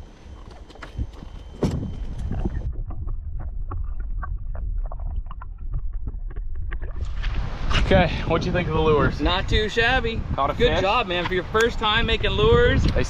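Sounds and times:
muffled underwater rumble: 0.3 - 8.1
underwater clicks and ticks: 2.2 - 7.4.

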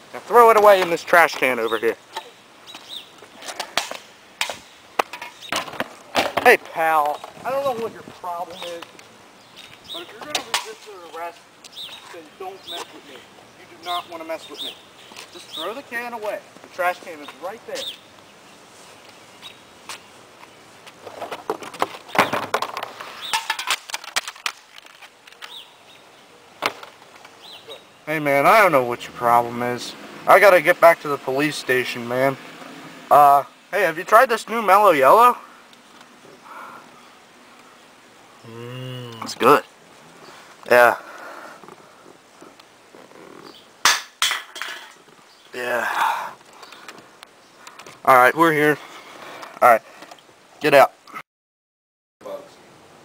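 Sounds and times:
birds chirping: 0.0 - 23.6, 25.2 - 43.8, 44.7 - 51.2.

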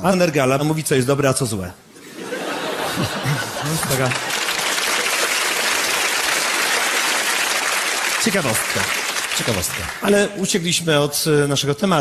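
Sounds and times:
audience applauding: 2.8 - 10.1.

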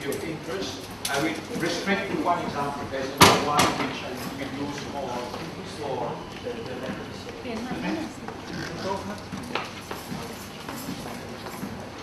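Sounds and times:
footsteps: 6.3 - 11.9.

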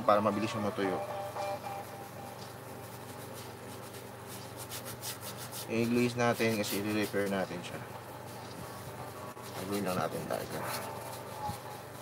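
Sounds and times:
steady low hum: 0.0 - 12.0
bristle brush scratching canvas: 1.4 - 12.0.

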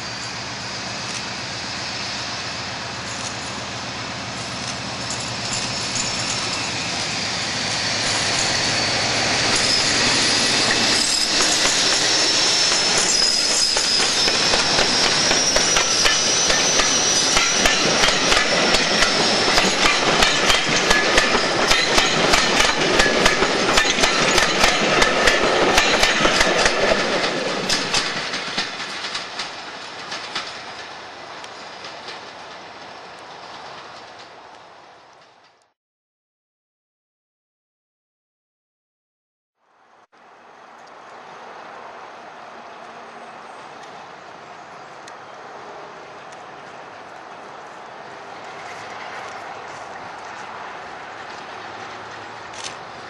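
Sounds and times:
diesel locomotive engine: 0.0 - 35.7, 39.8 - 53.0
wheels clicking over rail joints: 3.0 - 7.2, 8.0 - 35.7, 46.2 - 53.0
high wavering whistle: 5.7 - 20.0.

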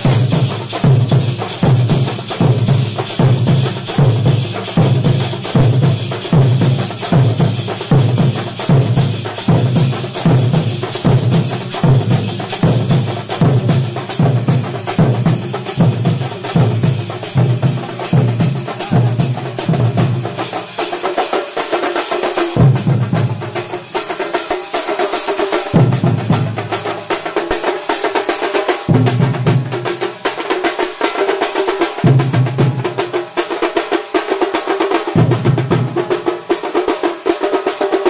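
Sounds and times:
deep drums pounding: 0.0 - 20.5, 22.4 - 23.8, 25.7 - 27.0, 28.8 - 30.1, 32.0 - 33.1, 35.0 - 36.6
brass hand cymbals clashing: 0.0 - 38.0
rapid smaller drums: 0.0 - 38.0.

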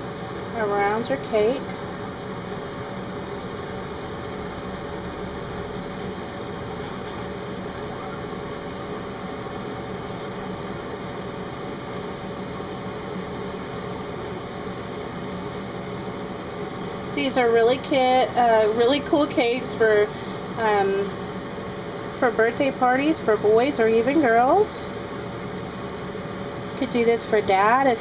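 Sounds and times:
fan hiss and hum: 0.0 - 28.0.

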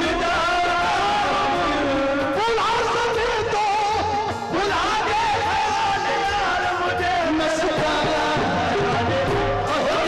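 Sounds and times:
qawwali singing: 0.0 - 10.0.

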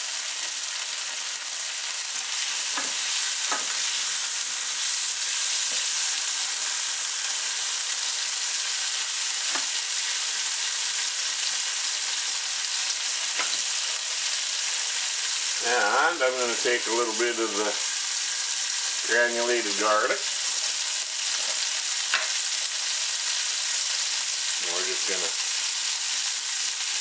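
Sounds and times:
meat sizzling in a frying pan: 0.0 - 27.0.

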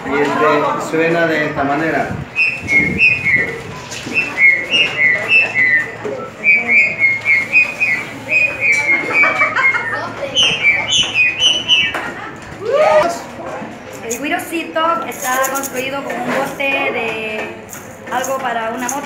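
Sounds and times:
hose wind instrument playing tune: 2.3 - 9.8.

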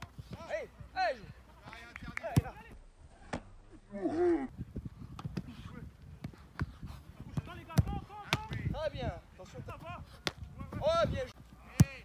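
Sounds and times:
ball striking goalkeeper gloves: 7.3 - 8.7.

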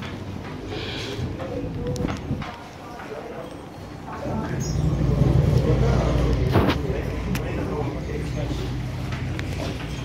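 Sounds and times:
indistinct voices: 0.0 - 10.0.

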